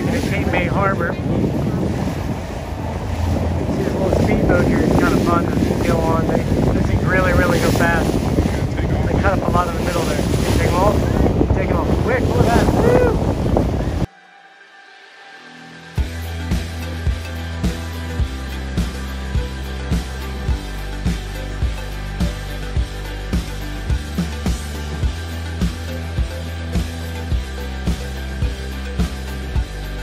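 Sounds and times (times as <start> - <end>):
boat engine running: 0.0 - 14.1, 16.0 - 30.0
wind buffeting microphone: 0.0 - 14.1
background voices: 0.0 - 16.0
water rushing: 0.0 - 30.0.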